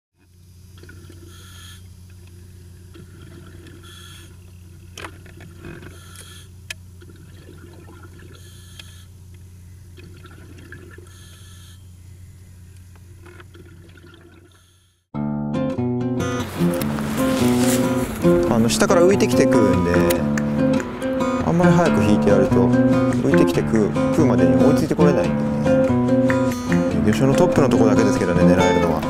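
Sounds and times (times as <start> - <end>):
faint watery noise: 0.2 - 6.0, 6.6 - 8.5, 9.1 - 11.2, 12.9 - 14.6
low underwater hum: 0.2 - 15.1, 23.8 - 27.1.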